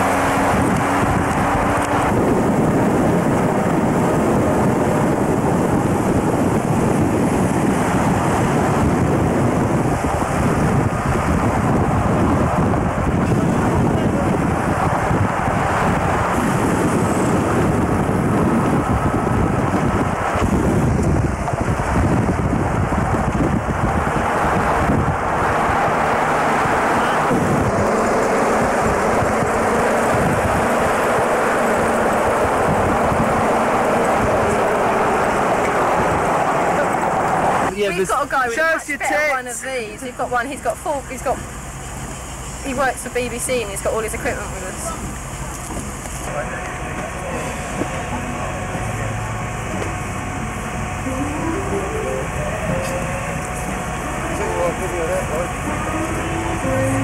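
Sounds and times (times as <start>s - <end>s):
wind buffeting microphone: 0.0s - 38.8s
vehicle road and engine noise: 0.0s - 57.0s.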